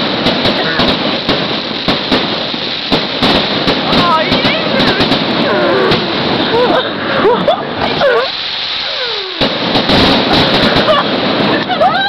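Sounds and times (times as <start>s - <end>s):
aerial shells bursting: 0.0s - 6.6s, 8.2s - 11.7s
fireworks bangs and crackling: 0.0s - 12.0s.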